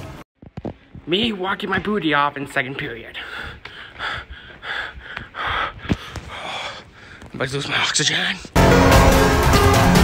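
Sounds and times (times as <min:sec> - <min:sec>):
man breathing hard: 0:03.1 - 0:07.4.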